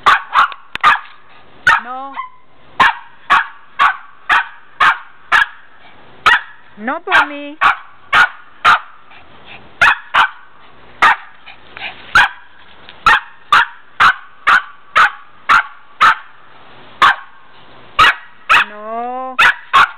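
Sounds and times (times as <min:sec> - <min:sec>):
small dog barking: 0:00.0 - 0:09.0, 0:09.8 - 0:11.4, 0:12.1 - 0:16.4, 0:17.0 - 0:17.4, 0:18.0 - 0:18.8, 0:19.4 - 0:19.9.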